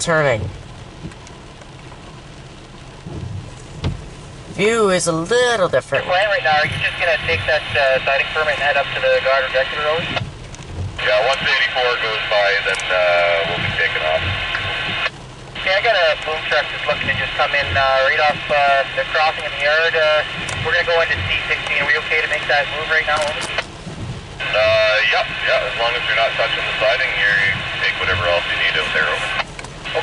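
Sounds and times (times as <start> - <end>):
low rumble: 0.0 - 30.0
rain falling on car: 0.0 - 30.0
radio channel hiss: 4.5 - 10.4, 11.0 - 30.0
voice over radio: 4.6 - 10.2, 11.0 - 23.7, 24.4 - 30.0.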